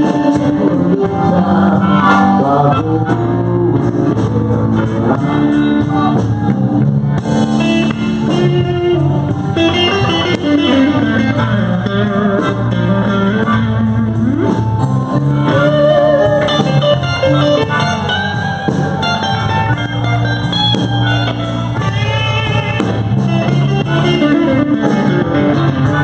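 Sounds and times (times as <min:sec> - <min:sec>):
blues band playing: 0:00.0 - 0:26.0.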